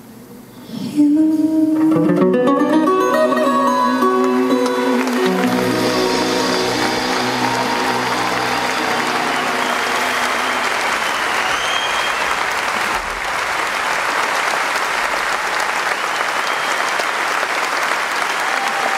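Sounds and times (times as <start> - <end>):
audience applauding: 4.1 - 18.9
band final chord: 4.5 - 11.3.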